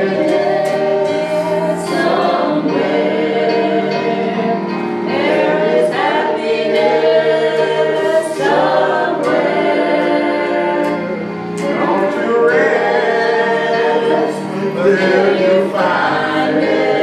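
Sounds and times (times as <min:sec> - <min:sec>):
people singing gospel into microphones: 0:00.0 - 0:17.0.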